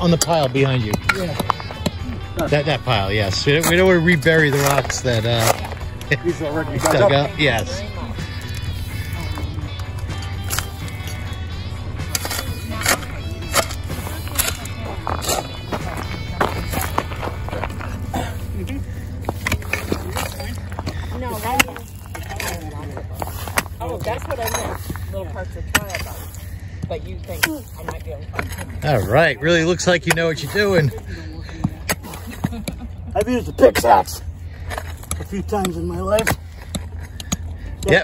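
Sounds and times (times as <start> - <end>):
voices in background: 0.0 - 38.0
shovel scraping rubble: 2.6 - 7.6, 8.2 - 26.6.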